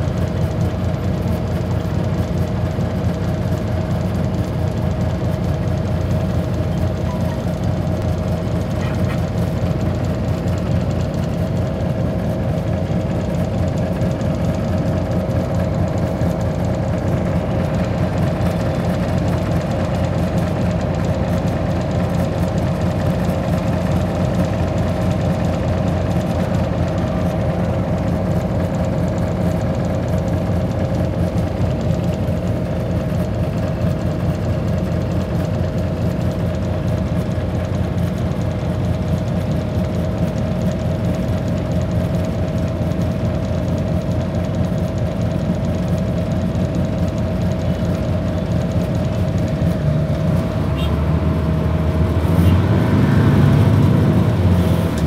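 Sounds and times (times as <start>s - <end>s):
constant hum: 0.0s - 55.0s
idling engines rumbling: 0.0s - 55.0s.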